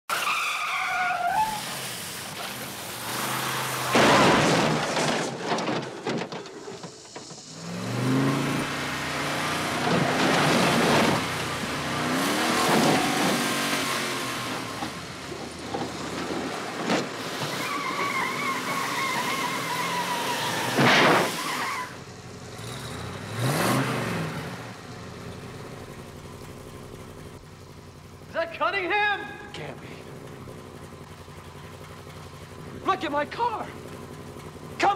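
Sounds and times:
tyre squeal: 0.1s - 1.9s, 12.3s - 14.9s, 15.7s - 22.0s
car engine revving: 1.8s - 5.3s, 7.0s - 28.3s
heavy crashes: 3.3s - 18.0s.

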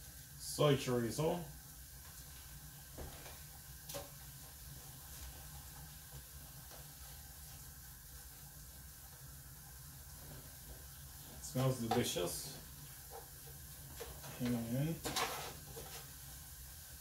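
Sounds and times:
food sizzling in a pan: 0.0s - 17.0s.

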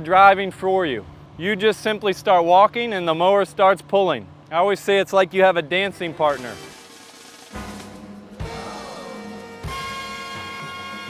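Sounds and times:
soundtrack music: 7.4s - 11.0s
heavy bass drum hits: 7.5s - 10.1s.

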